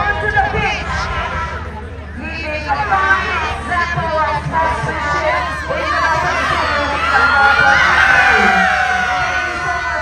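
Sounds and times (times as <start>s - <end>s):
women cheering and whooping: 5.5s - 10.0s.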